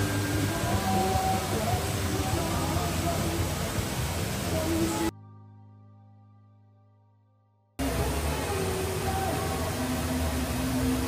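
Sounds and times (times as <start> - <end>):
background voices: 0.0 - 5.1, 7.8 - 11.0
waterfall rushing: 0.0 - 5.1, 7.8 - 11.0.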